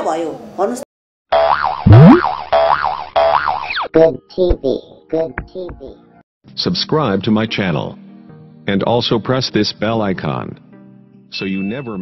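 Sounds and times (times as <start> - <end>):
cartoon boing: 1.4 - 3.9
rising swoop: 1.9 - 2.2.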